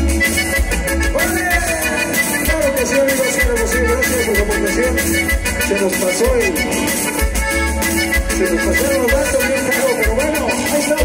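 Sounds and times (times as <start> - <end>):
accordion melody: 0.0 - 11.0.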